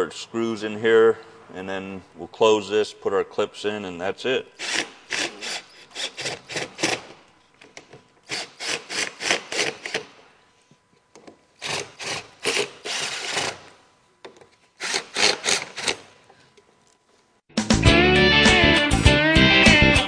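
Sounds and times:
hand tools scraping and rubbing: 0:11.6 - 0:13.7, 0:14.5 - 0:16.5.

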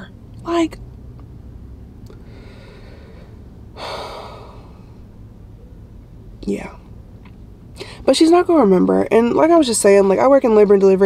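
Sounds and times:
woman breathing: 0:02.1 - 0:05.2, 0:07.8 - 0:08.1.

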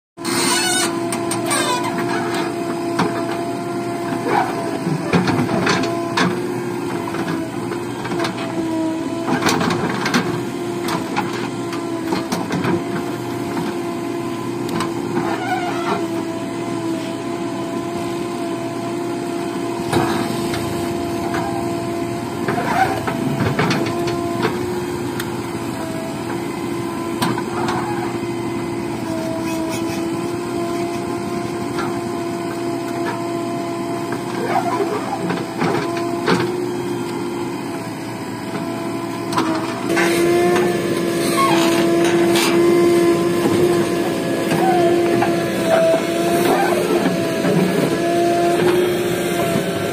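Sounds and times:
diesel engine running: 0:00.2 - 0:49.9.

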